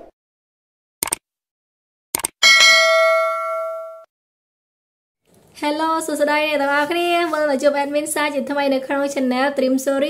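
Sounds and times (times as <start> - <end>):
short clicks: 1.0 - 1.2, 2.1 - 2.4
notification bell ding: 2.4 - 4.1.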